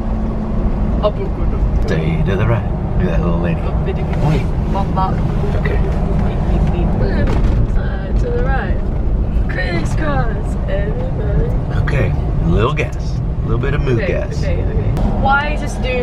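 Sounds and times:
vehicle engine and tyres rumble: 0.0s - 16.0s.

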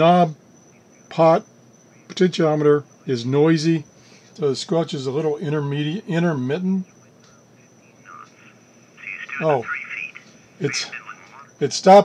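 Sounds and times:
radio scanner speaker bursts: 6.7s - 11.7s.

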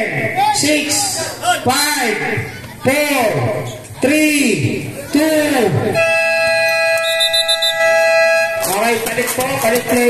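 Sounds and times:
game buzzer long tone: 6.0s - 8.6s.

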